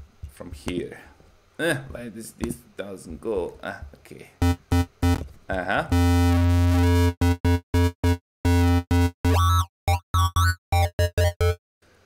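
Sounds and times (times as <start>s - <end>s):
distorted synth bass: 4.4s - 5.2s, 5.8s - 11.6s.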